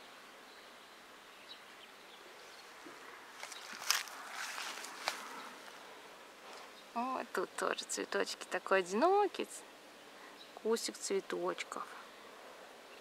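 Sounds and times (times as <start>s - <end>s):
garden ambience: 0.0s - 13.0s
footsteps through grass: 3.3s - 5.8s.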